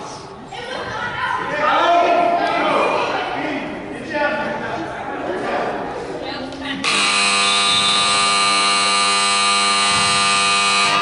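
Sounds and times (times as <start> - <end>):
scoreboard buzzer: 6.8 - 11.0.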